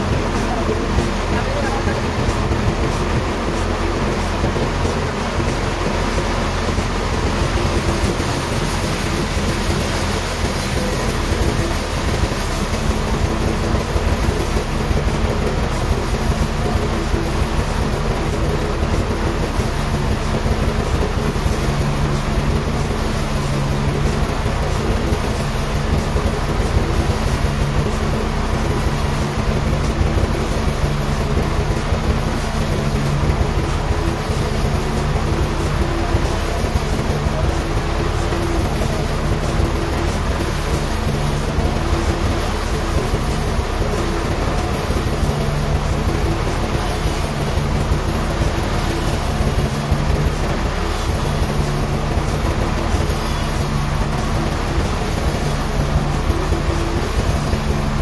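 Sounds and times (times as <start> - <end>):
band sawmill cutting wood: 0.0 - 58.0.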